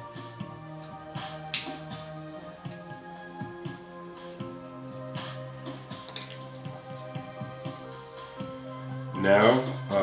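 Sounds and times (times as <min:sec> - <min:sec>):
music of held tones: 0:00.0 - 0:10.0.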